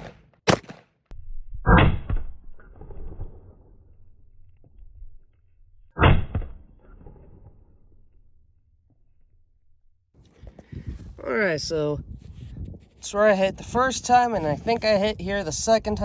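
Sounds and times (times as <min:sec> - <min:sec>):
sharp rifle shot: 0:00.0 - 0:00.9, 0:01.7 - 0:02.3, 0:06.0 - 0:07.4.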